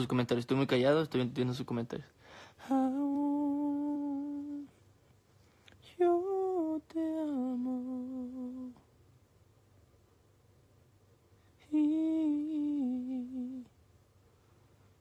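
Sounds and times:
man humming a slow tune: 2.6 - 4.8, 5.9 - 8.8, 11.6 - 13.7.

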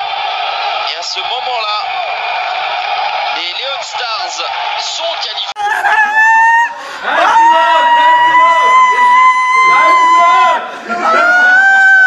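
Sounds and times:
people screaming in celebration: 0.0 - 12.0
people shouting: 5.6 - 12.0.

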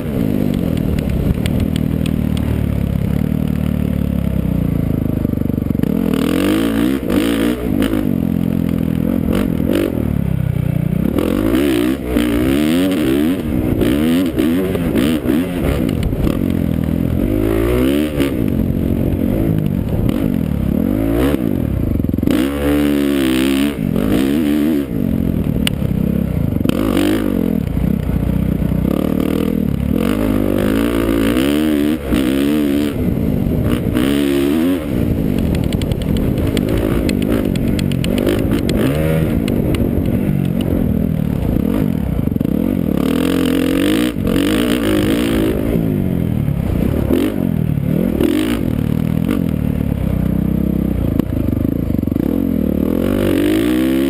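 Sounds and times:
motocross bike engine revving: 5.2 - 54.0.

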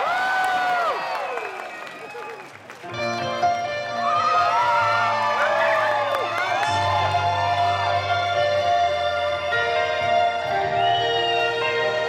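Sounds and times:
crowd cheering and whistling: 0.0 - 3.1, 3.9 - 12.0
keyboard sustained chords: 2.9 - 12.0.

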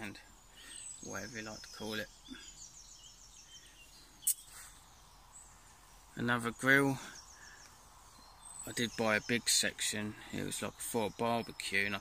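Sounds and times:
songbird trilling: 0.0 - 12.0.

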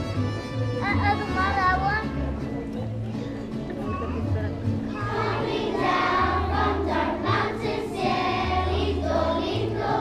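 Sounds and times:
low instrumental accompaniment: 0.0 - 10.0
children's choir singing: 4.9 - 10.0.

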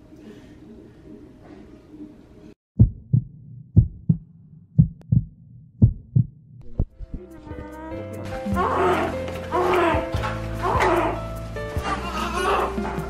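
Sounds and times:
heartbeat thumps: 2.8 - 7.8
music: 6.6 - 13.0
newborn baby crying: 8.5 - 11.2, 11.8 - 13.0.

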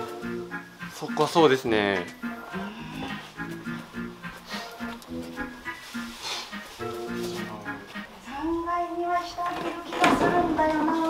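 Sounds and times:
light bouncy background music: 0.0 - 11.0.

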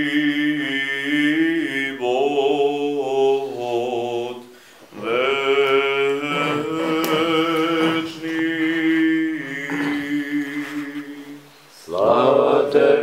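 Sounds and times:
man chanting: 5.0 - 13.0.

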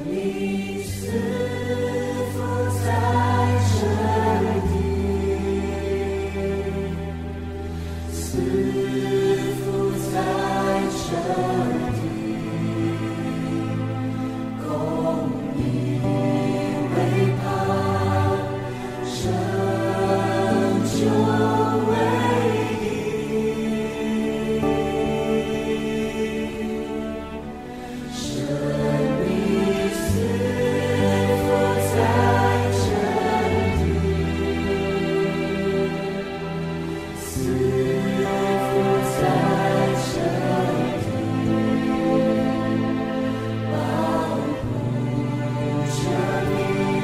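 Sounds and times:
choir singing a worship song: 0.0 - 47.0
low held accompaniment: 0.0 - 47.0.

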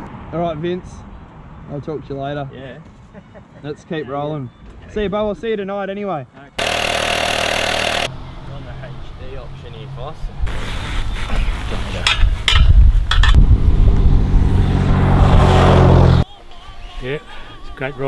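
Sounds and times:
engine running: 6.6 - 8.2, 13.3 - 16.2.

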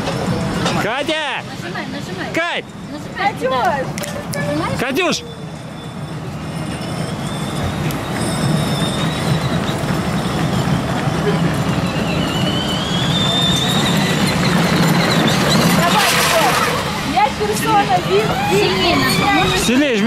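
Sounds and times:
distant voices: 0.0 - 20.0.

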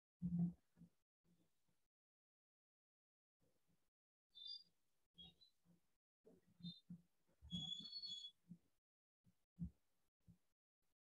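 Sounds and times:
faint high-pitched chirp: 4.3 - 5.6, 6.5 - 8.5.

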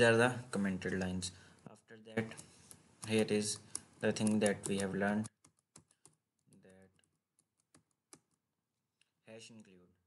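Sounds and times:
computer keyboard key clicks: 3.0 - 6.6.

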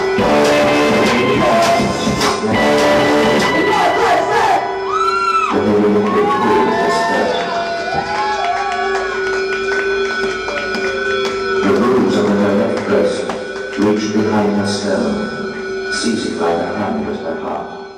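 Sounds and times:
electronic pitch glides: 0.0 - 8.0.

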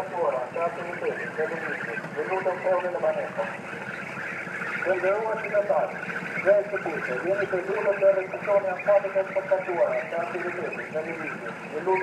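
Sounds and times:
announcement through loudspeaker: 0.0 - 12.0.

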